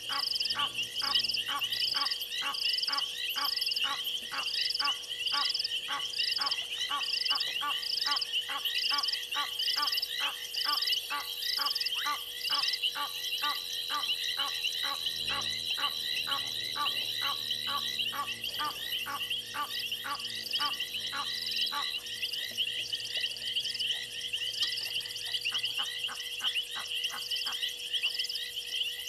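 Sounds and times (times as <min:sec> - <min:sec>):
frogs calling rhythmically: 0:00.0 - 0:29.0
higher pulsed frog call: 0:00.0 - 0:29.0
steady high chirring: 0:00.0 - 0:29.0.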